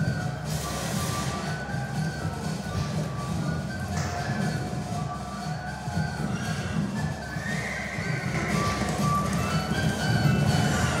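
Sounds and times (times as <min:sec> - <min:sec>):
film music: 0:00.0 - 0:11.0.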